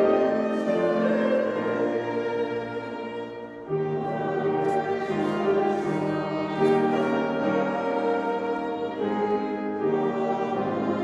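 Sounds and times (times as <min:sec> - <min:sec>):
violin playing slow melody: 0:00.0 - 0:11.0.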